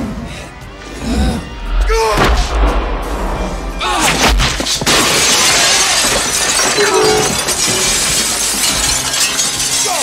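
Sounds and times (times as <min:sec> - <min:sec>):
shop window shattering: 0:04.2 - 0:10.0
glass showering and tinkling: 0:05.2 - 0:10.0.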